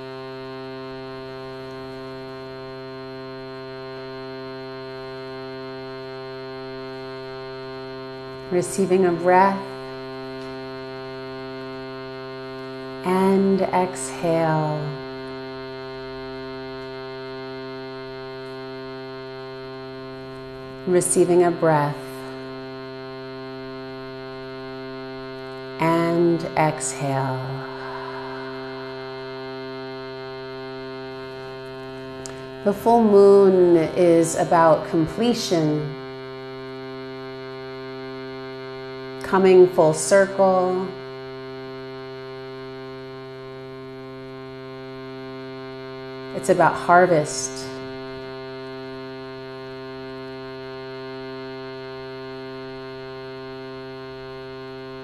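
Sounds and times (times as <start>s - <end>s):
shruti box drone: 0.0s - 55.0s.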